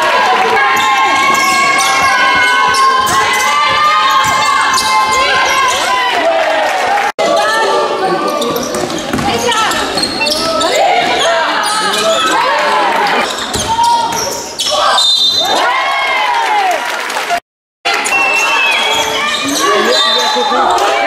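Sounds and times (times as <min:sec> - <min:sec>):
basketball bouncing: 0:00.6 - 0:05.7, 0:08.5 - 0:11.2
sneakers squeaking on floor: 0:00.8 - 0:05.9, 0:08.2 - 0:12.5, 0:13.2 - 0:15.6, 0:18.0 - 0:20.6
people calling out: 0:09.3 - 0:15.8, 0:17.9 - 0:21.0.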